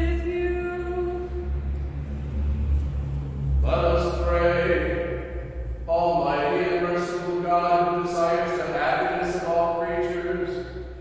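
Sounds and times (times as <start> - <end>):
low rumble: 0.0 - 11.0
person chanting: 0.0 - 11.0.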